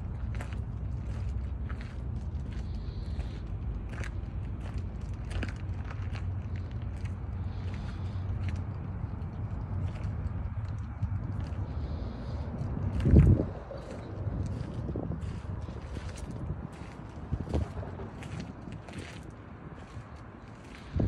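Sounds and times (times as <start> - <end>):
footsteps crunching on gravel: 0.0 - 21.0
steady low rumble: 0.0 - 21.0.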